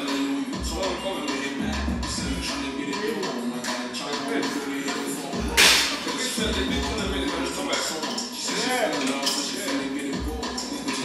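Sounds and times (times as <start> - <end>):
workout background music: 0.0 - 11.0.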